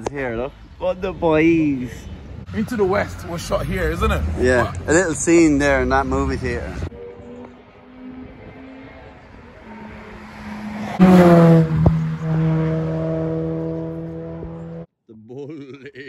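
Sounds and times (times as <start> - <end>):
car passing by: 2.4 - 14.8.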